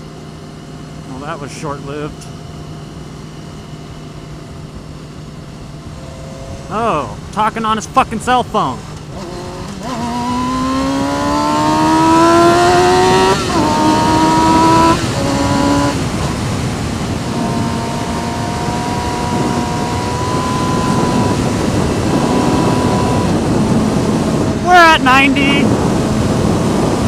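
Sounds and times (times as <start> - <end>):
motorcycle engine accelerating: 0.0 - 27.0
wind rushing over microphone: 9.1 - 27.0.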